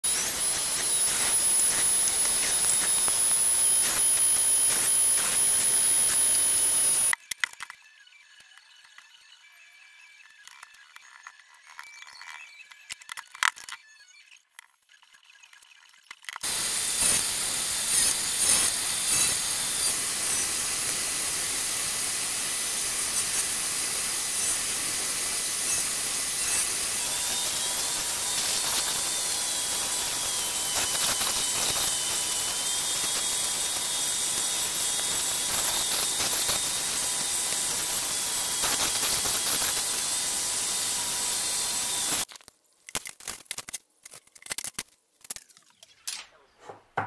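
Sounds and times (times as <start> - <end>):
belt sander sanding wood: 0.0 - 7.1, 16.4 - 42.3
faint wavering high whine: 0.1 - 7.2.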